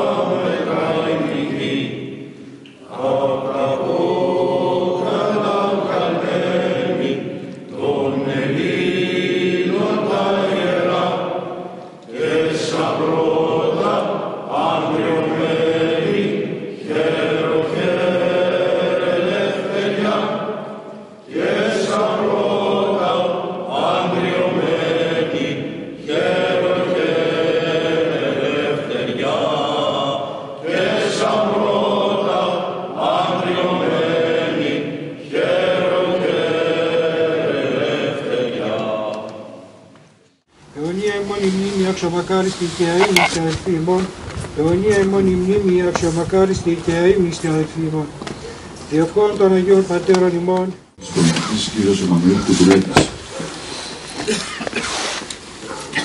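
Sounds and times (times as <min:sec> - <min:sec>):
voices chanting in a church: 0:00.0 - 0:56.0.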